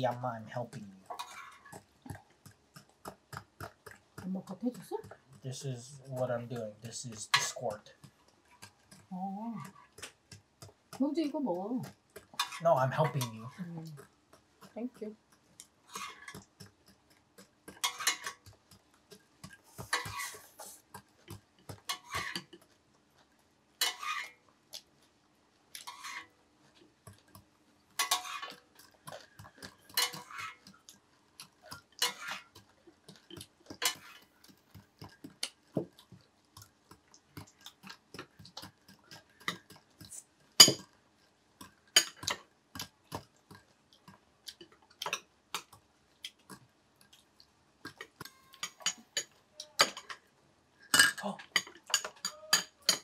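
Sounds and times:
metal spoon clinking on dishes: 0:28.0 - 0:28.9, 0:29.9 - 0:30.5, 0:48.2 - 0:50.2, 0:50.9 - 0:53.0.

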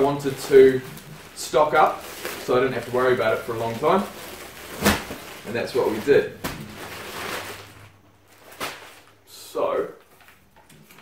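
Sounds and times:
plastic bag rustling: 0:00.0 - 0:11.0.

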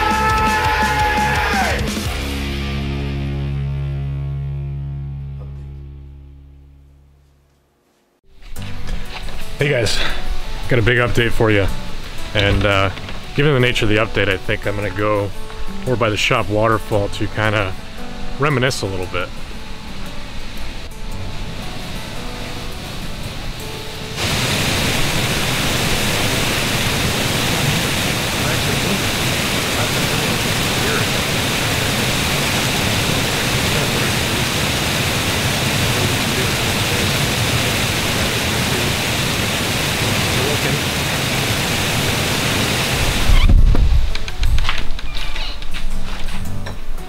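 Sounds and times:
waterfall rushing: 0:00.0 - 0:02.2, 0:09.0 - 0:44.4.

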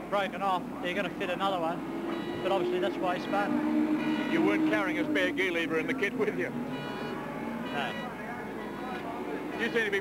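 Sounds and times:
faint engine hum: 0:00.0 - 0:10.0.

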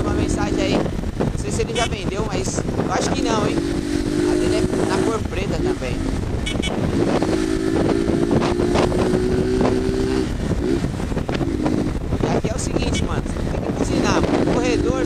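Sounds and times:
motorcycle engine cruising: 0:00.0 - 0:15.0
wind on microphone: 0:00.0 - 0:15.0.

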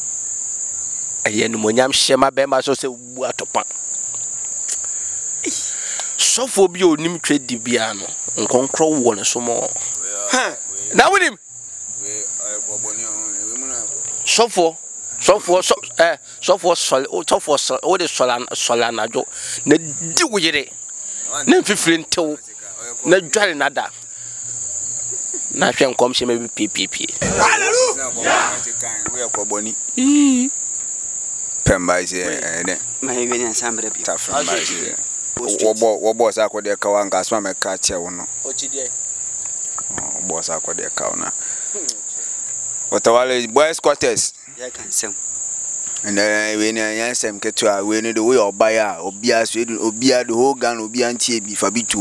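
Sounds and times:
crickets chirring: 0:00.0 - 0:52.0
man speaking: 0:06.2 - 0:11.4, 0:12.0 - 0:24.0, 0:25.5 - 0:29.8, 0:31.7 - 0:38.9, 0:46.1 - 0:52.0
man humming: 0:27.2 - 0:28.7.

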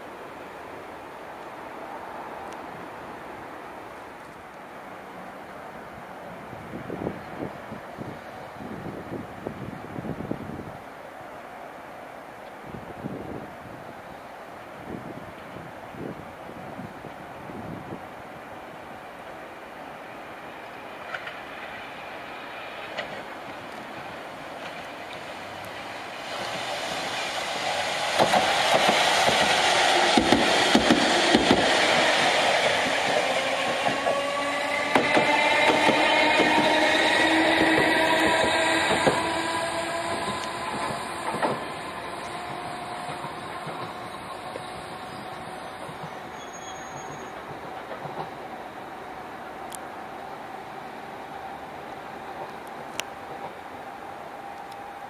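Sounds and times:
train passing: 0:00.0 - 0:55.0
wheels clicking over rail joints: 0:20.6 - 0:21.8, 0:22.8 - 0:27.3.

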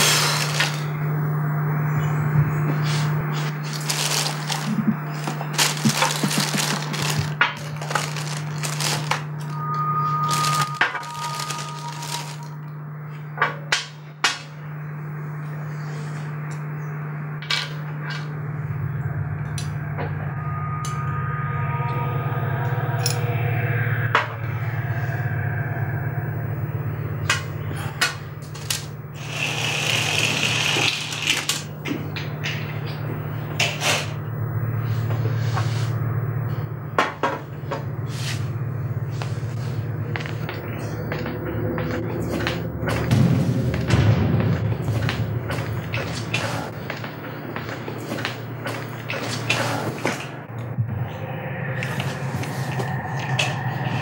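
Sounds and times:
plastic bag rustling: 0:00.0 - 0:00.9, 0:03.6 - 0:09.6, 0:10.2 - 0:12.5
steady low hum: 0:00.0 - 0:54.0.

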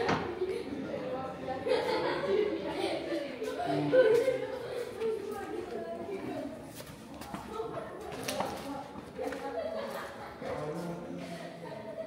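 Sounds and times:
people talking in reverberant room: 0:00.0 - 0:12.0
footsteps on stone floor: 0:04.2 - 0:09.6.

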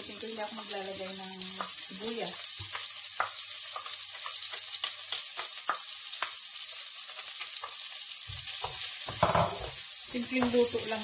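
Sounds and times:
garlic sizzling in frying pan: 0:00.0 - 0:11.0
spatula knock: 0:08.6 - 0:09.8.

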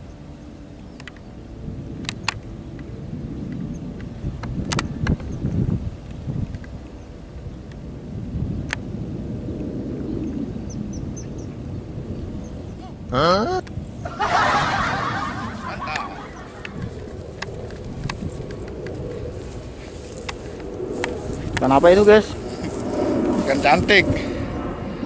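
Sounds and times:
wind rumble on microphone: 0:00.0 - 0:13.1, 0:13.7 - 0:25.0.

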